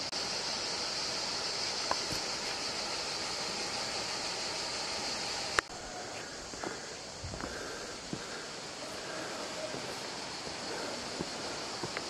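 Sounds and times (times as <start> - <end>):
river water rushing: 8.2 - 12.0.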